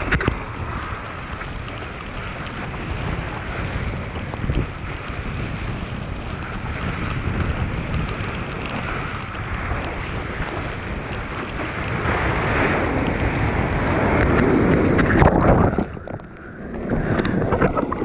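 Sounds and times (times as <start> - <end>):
ocean water rushing and splashing: 0.0 - 18.0
wind buffeting microphone: 0.0 - 18.0.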